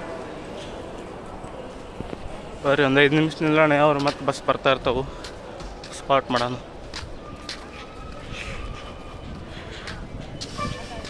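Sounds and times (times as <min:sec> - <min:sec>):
distant voices and activity: 0:00.0 - 0:11.0
footsteps on concrete: 0:03.9 - 0:11.0.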